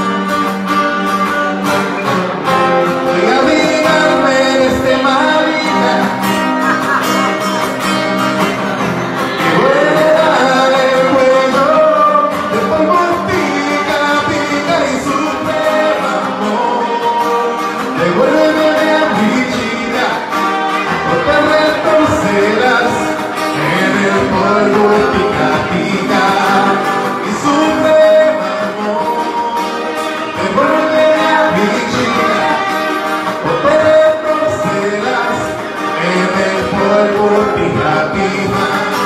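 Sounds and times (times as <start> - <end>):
acoustic guitar: 0.0 - 39.0
electric guitar: 0.0 - 39.0
man singing into a microphone: 1.8 - 39.0.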